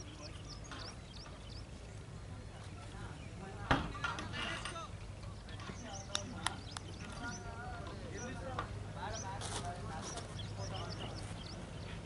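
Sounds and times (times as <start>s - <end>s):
birds chirping: 0.0s - 12.0s
distant voices of players: 0.0s - 12.0s
low outdoor hum: 0.0s - 12.0s.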